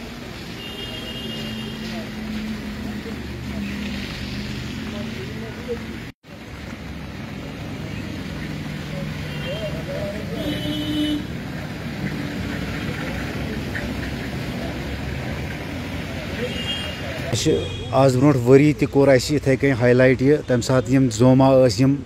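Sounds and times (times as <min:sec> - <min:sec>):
road traffic noise: 0:00.0 - 0:22.0.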